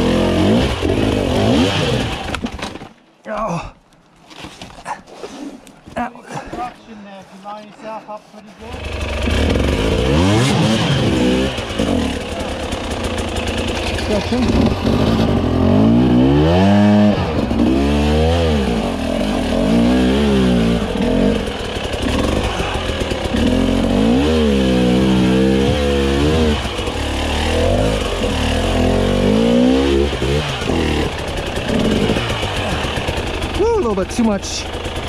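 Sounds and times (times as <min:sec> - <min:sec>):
motorcycle engine revving: 0:00.0 - 0:02.6, 0:08.6 - 0:35.0.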